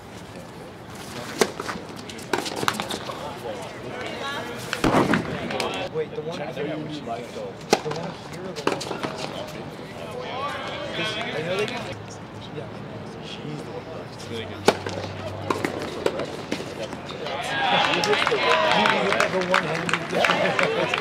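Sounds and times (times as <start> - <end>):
racquets hitting tennis ball: 1.0 - 5.9, 7.6 - 9.6, 14.5 - 21.0.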